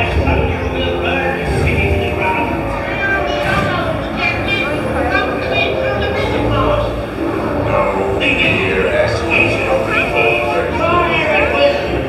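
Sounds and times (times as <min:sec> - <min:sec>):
music: 0:00.0 - 0:12.0
overlapping indistinct voices: 0:00.0 - 0:12.0
steady low rumble: 0:00.0 - 0:12.0.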